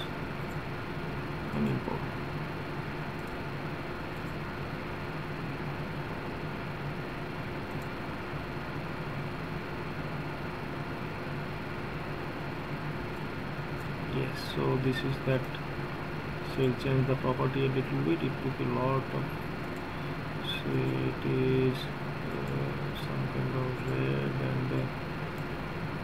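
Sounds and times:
background hum and hiss: 0.0 - 26.0.

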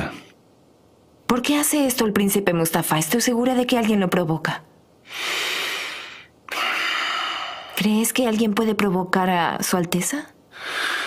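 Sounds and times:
heavy breathing: 5.0 - 7.8, 10.5 - 11.0.

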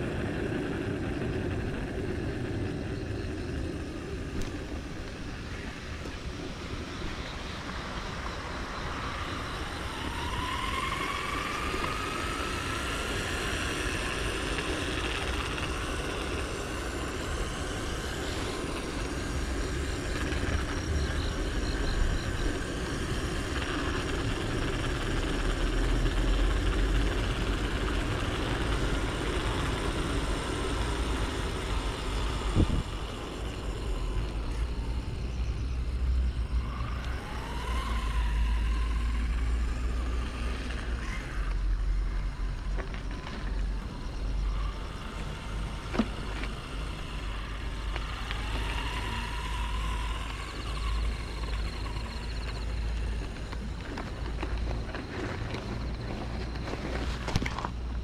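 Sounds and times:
wind rushing over microphone: 0.0 - 41.0
electric motor whine: 0.0 - 58.0.

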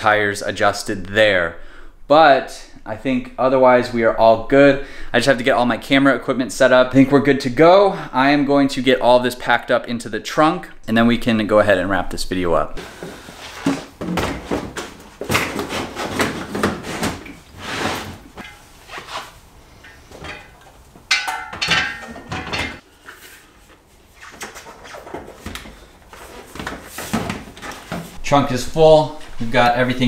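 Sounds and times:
gear clunking and rattling: 20.1 - 22.8.

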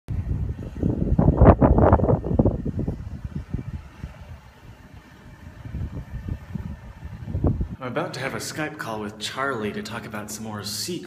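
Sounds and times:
wind buffeting microphone: 0.1 - 8.0.

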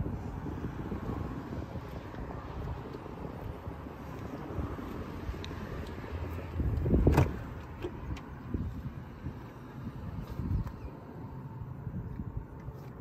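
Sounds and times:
wind on microphone: 0.0 - 13.0.

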